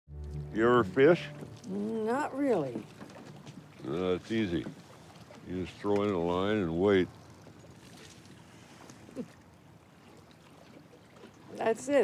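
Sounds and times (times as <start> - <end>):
light wind: 0.1 - 12.0
sea: 0.1 - 12.0.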